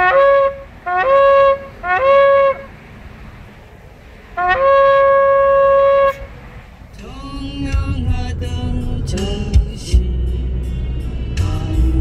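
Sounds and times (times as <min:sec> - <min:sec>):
shofar blast: 0:00.0 - 0:02.7, 0:04.4 - 0:06.4.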